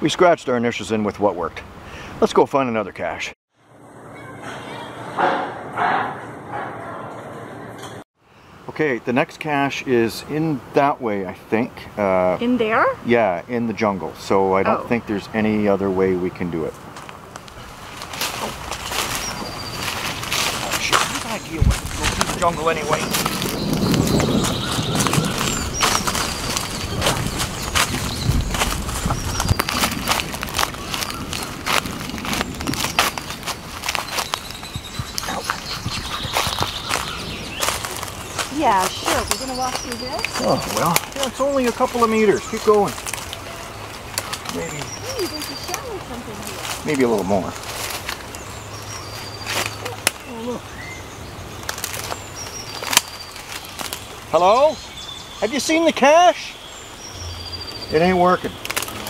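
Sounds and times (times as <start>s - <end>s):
plants brushing and crackling: 16.6s - 50.6s, 51.5s - 56.0s, 57.9s - 59.0s
footsteps crunching on dry leaves: 17.0s - 50.0s, 51.6s - 54.3s.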